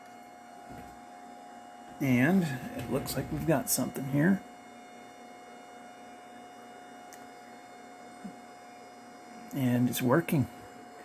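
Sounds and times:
electrical hum: 0.0 - 11.0.

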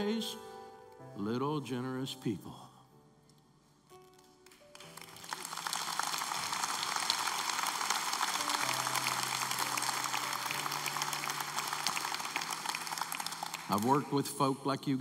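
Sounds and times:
soft background music: 0.0 - 15.0
audience applauding: 4.4 - 14.6.

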